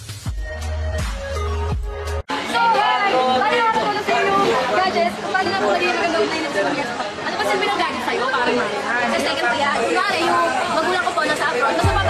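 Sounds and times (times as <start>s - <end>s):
young women talking: 2.4s - 12.0s.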